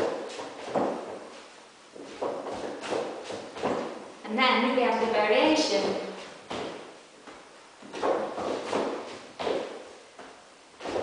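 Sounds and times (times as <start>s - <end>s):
shoes striking wooden floor: 0.0s - 1.4s, 2.0s - 4.0s, 6.2s - 11.0s.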